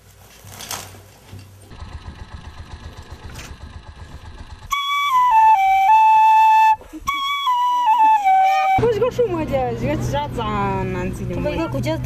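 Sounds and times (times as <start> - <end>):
small engine chugging: 1.7 - 6.2
bamboo flute notes: 4.7 - 8.9.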